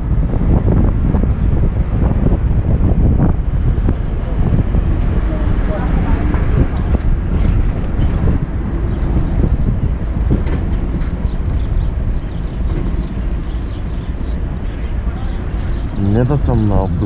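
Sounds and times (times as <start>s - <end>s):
bus engine running: 0.0s - 17.0s
wind rumble on microphone: 0.0s - 17.0s.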